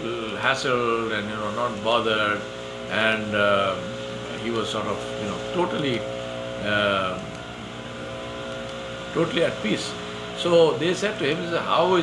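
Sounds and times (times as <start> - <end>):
man saying uh: 0.0 - 6.0, 6.6 - 7.3, 9.2 - 12.0
steady mechanical hum: 0.0 - 12.0.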